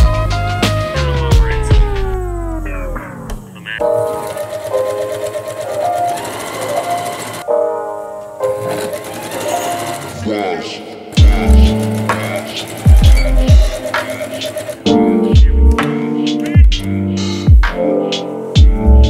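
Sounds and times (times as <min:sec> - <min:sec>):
electronic music: 0:00.0 - 0:19.0
sewing machine stitching: 0:03.8 - 0:07.4, 0:08.5 - 0:10.3, 0:11.1 - 0:15.0
deep bass hits: 0:15.4 - 0:15.8.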